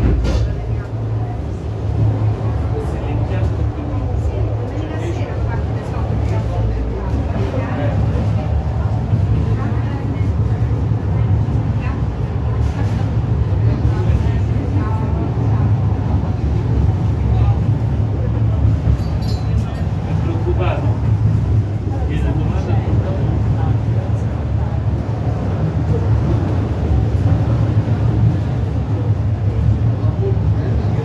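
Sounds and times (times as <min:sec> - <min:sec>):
funicular car rumbling on track: 0:00.0 - 0:31.0
people talking: 0:00.0 - 0:31.0.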